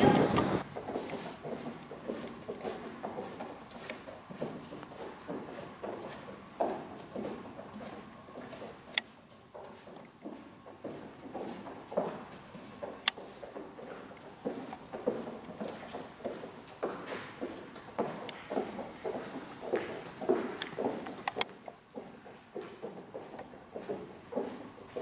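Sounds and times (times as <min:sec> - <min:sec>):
footsteps of person and dog: 0:00.6 - 0:25.0.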